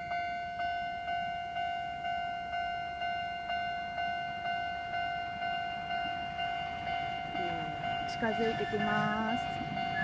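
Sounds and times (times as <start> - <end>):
level crossing bell ringing: 0.0 - 10.0.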